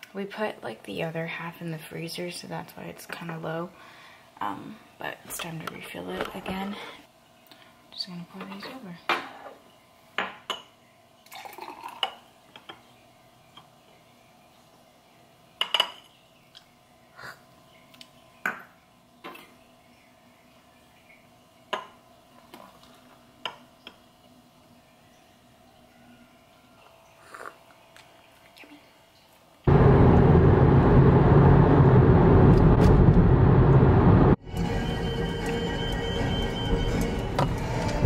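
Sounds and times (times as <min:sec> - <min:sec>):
faint steady hum: 0:00.0 - 0:38.0
glasses clinking on countertop: 0:15.6 - 0:16.1.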